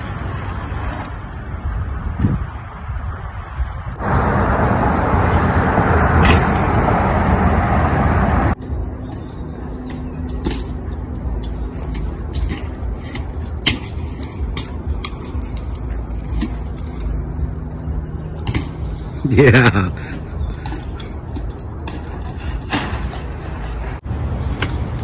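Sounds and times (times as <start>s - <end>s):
loud rushing noise: 3.9s - 8.6s
bike clicking over paving stones: 5.0s - 25.0s.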